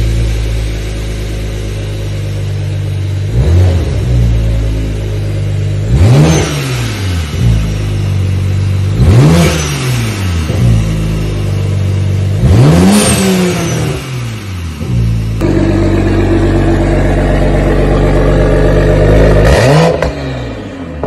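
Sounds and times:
turbocharged car engine revving: 0.0 - 21.0.

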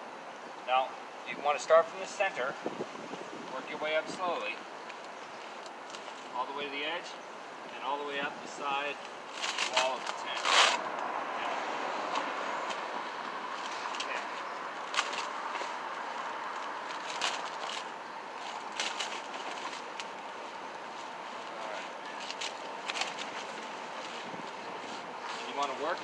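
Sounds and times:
steady background noise: 0.0 - 26.0.

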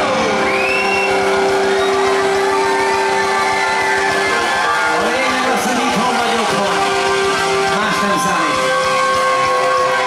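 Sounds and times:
keyboard and guitars sustained chord: 0.0 - 10.0.

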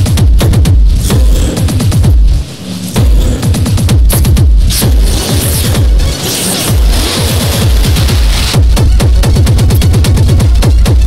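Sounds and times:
fast stuttering electronic beat: 0.0 - 11.0.

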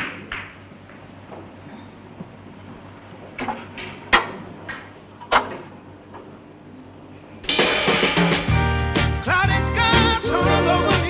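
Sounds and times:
soul record playing: 7.5 - 11.0.

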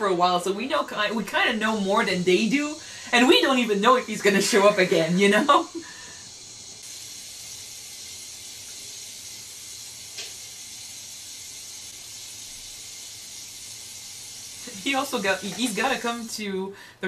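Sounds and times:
steady background hiss: 0.0 - 17.0.

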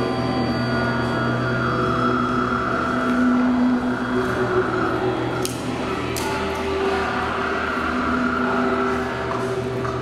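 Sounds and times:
electric guitar drones: 0.0 - 10.0
low hum: 0.0 - 10.0.

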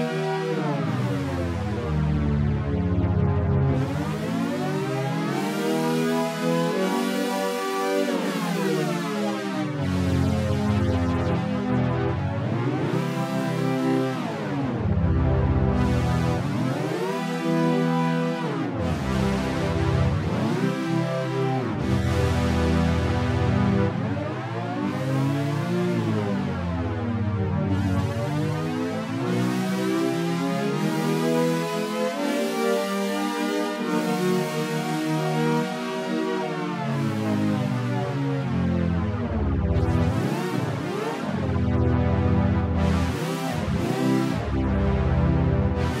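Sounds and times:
pitch-shifted synth music: 0.1 - 46.0.

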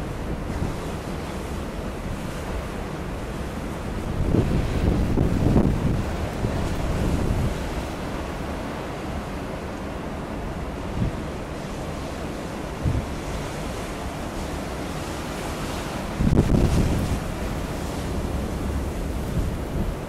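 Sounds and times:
wind buffeting microphone: 0.0 - 9.0, 10.6 - 20.0.

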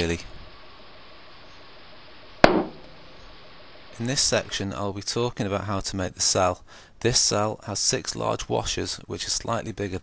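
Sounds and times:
sharp gas pop: 2.4 - 3.1.

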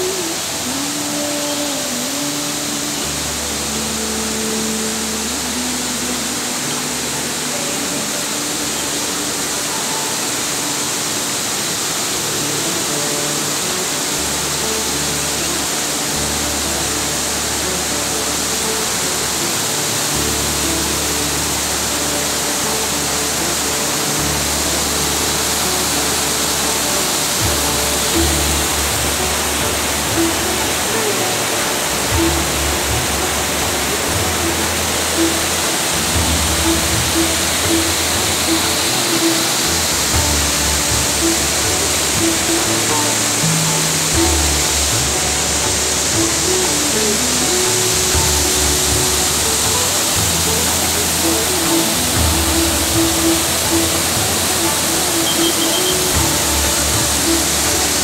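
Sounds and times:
music with bass line: 0.0 - 58.0
river rapids rushing: 0.0 - 58.0.

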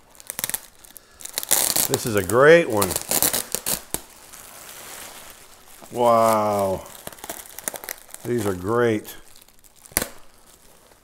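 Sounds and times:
bubble wrap crackles: 0.0 - 11.0
bubble wrap crinkling: 0.0 - 11.0.

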